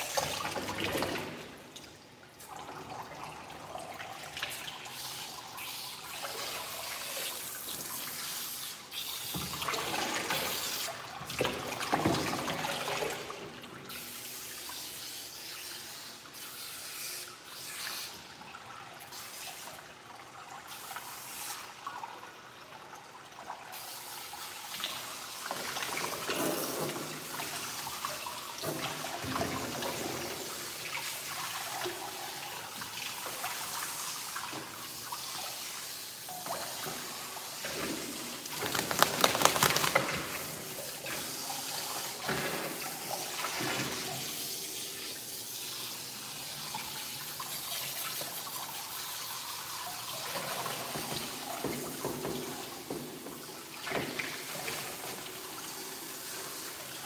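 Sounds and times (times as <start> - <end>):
water splashing on wet dog: 38.3 - 40.8.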